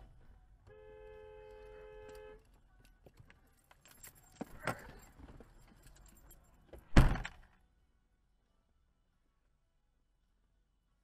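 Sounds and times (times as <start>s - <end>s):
dual-tone car horn blast: 0.7s - 2.5s.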